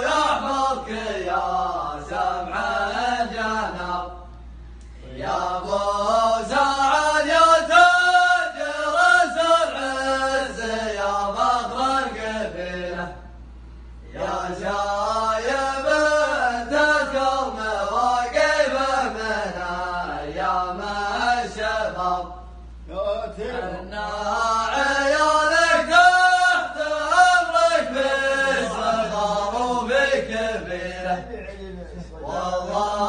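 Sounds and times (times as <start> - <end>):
men chanting in unison: 0.0 - 4.2, 5.0 - 13.3, 14.0 - 33.0.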